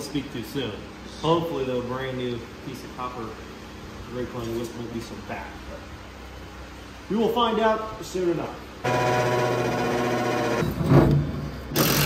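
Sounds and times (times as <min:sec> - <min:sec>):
cordless drill whining: 0:11.8 - 0:12.0.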